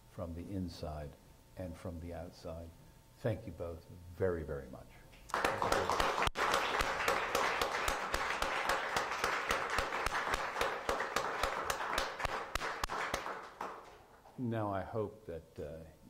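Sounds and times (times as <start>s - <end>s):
audience applause: 5.3s - 14.2s
loud single claps: 5.3s - 14.3s.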